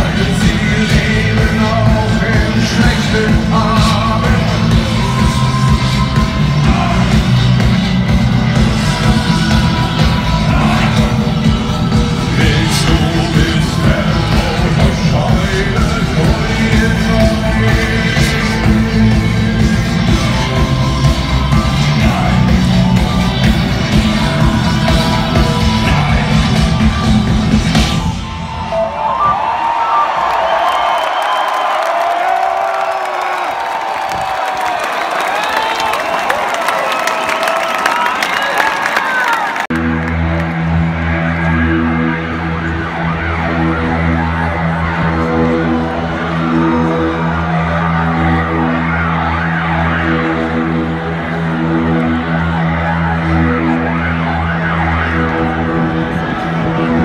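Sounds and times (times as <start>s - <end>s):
heavy metal band playing: 0.0s - 29.6s, 39.8s - 57.0s
crowd cheering and whistling: 0.0s - 57.0s
pulsing synthesizer drone: 39.7s - 57.0s.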